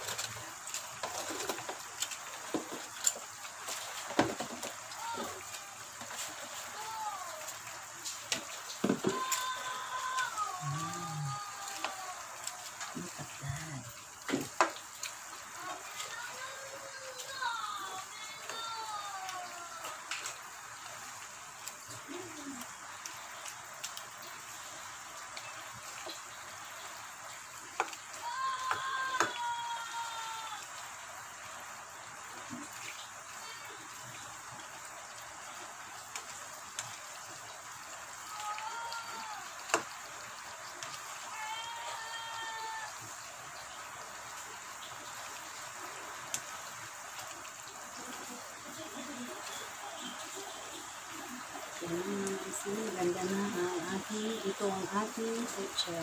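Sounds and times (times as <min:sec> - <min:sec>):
faint voices: 0:09.1 - 0:14.0.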